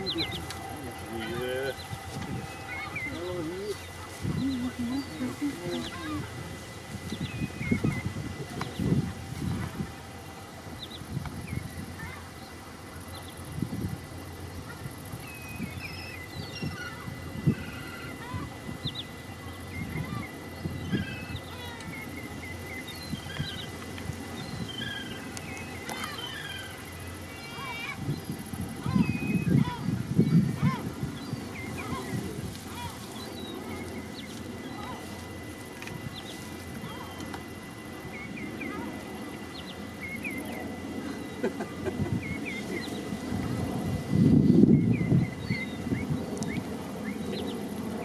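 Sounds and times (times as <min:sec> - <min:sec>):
lower-pitched calls: 0:00.0 - 0:13.4, 0:14.5 - 0:43.2
faint steady high tone: 0:00.0 - 0:48.0.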